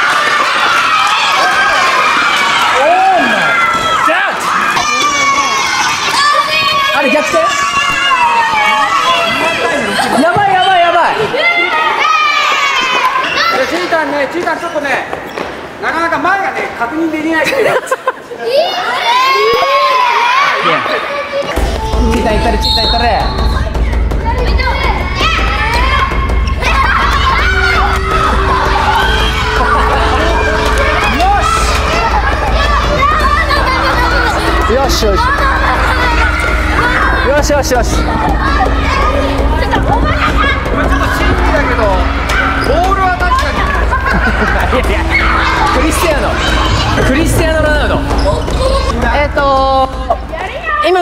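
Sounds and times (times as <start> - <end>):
children cheering and shouting: 0.0 - 14.0, 18.4 - 49.2
steady low hum: 21.6 - 50.8.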